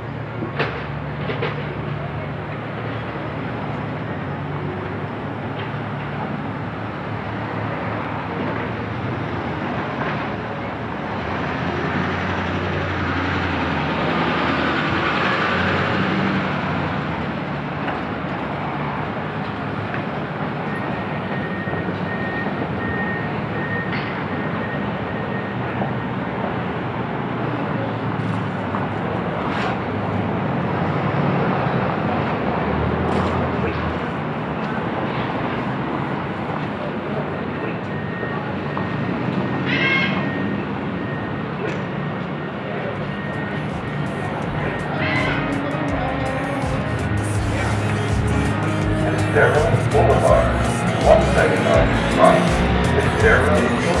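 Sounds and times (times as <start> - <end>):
cars and trucks driving past: 0.0 - 54.0.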